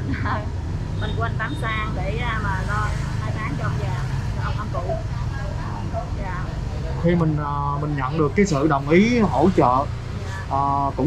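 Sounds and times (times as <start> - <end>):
engine humming: 0.0 - 11.0
faint indistinct voices: 1.1 - 11.0.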